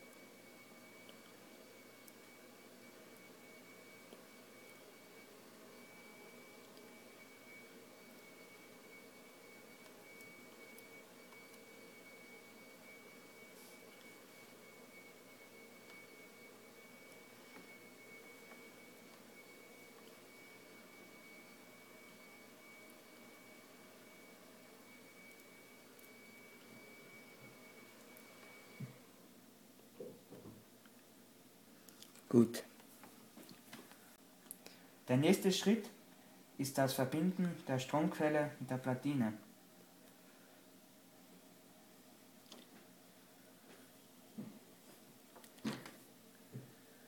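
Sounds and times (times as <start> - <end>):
thin high-pitched whine: 0.0 - 29.3
faint room hiss: 0.0 - 47.0.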